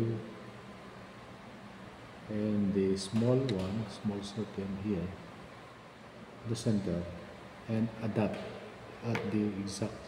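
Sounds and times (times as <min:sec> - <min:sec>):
person speaking: 0:02.3 - 0:05.3, 0:06.4 - 0:10.0.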